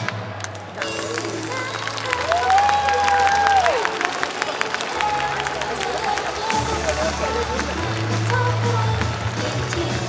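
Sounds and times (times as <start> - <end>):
audience clapping: 0.0 - 10.0
pop song over a pa: 0.0 - 10.0.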